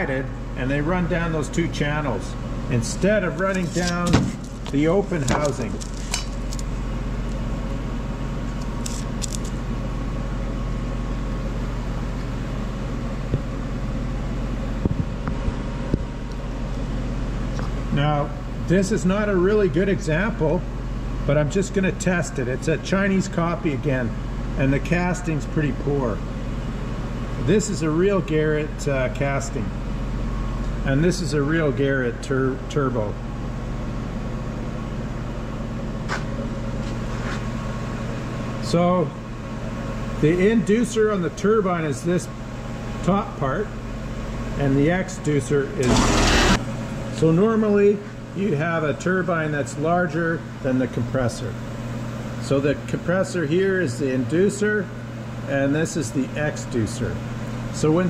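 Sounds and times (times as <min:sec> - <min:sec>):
low machine hum: 0:00.0 - 0:58.0
knocks of metal parts handled: 0:03.4 - 0:06.6.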